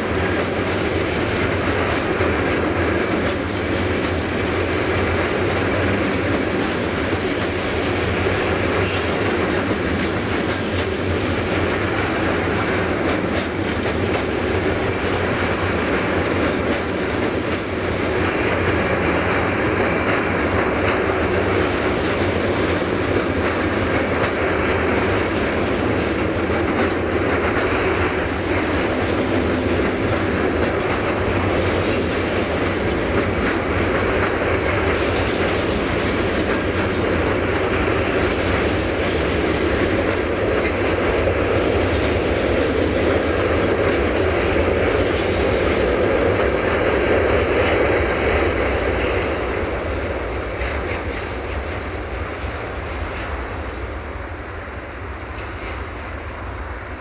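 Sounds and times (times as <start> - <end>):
train wheels rumbling on rail: 0.0 - 57.0
wheels squealing: 25.1 - 26.7, 27.9 - 29.0, 31.8 - 32.7.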